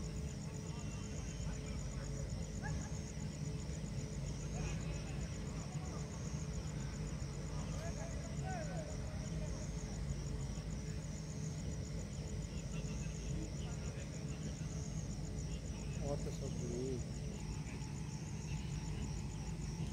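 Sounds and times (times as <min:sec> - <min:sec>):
crickets trilling: 0:00.0 - 0:19.9
faint distant voices: 0:00.0 - 0:19.9
steady low hum: 0:00.0 - 0:19.9.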